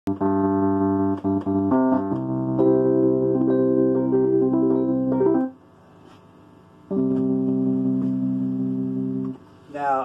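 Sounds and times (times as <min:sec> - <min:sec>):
distorted electric piano chords: 0:00.1 - 0:05.6, 0:06.9 - 0:09.4.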